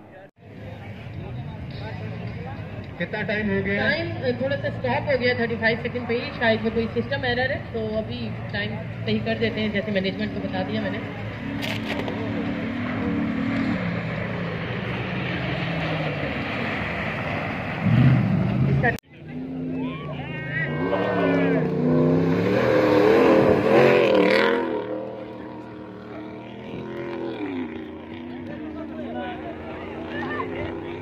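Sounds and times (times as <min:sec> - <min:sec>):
jeep engine revving past: 0:11.0 - 0:31.0.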